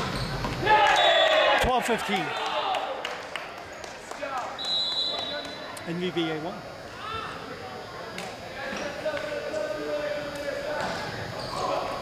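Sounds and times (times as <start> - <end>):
referee's whistle blast: 4.6 - 5.6.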